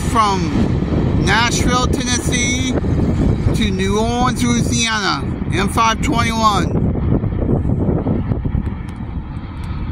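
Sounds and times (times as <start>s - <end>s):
wind buffeting microphone: 0.0s - 9.9s
distant diesel freight train: 6.4s - 9.9s.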